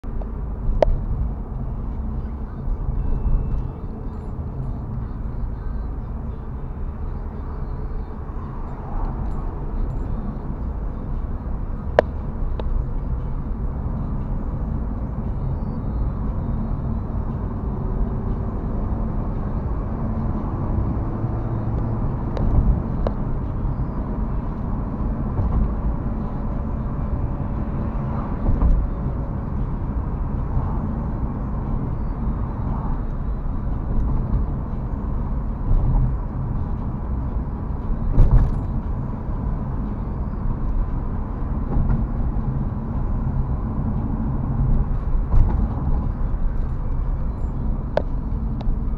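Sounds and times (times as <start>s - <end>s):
road and engine rumble in car: 0.0s - 48.9s.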